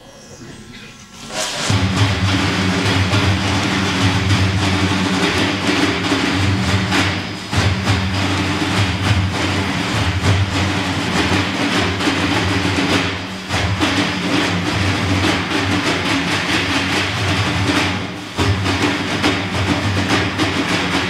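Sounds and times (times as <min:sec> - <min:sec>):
frame drums playing: 0:01.1 - 0:21.0.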